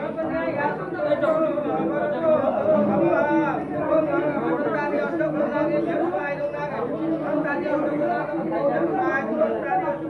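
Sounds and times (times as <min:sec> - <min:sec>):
overlapping chatter of people: 0:00.0 - 0:10.0.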